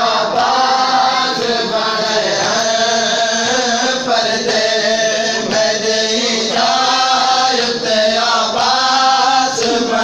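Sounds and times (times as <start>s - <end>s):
men chanting a lament: 0.0s - 10.0s
hands slapping on chests: 1.3s - 1.7s, 8.5s - 10.0s.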